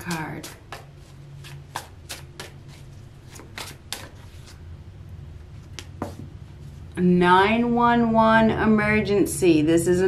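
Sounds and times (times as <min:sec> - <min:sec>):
cards being shuffled: 0:00.0 - 0:04.6.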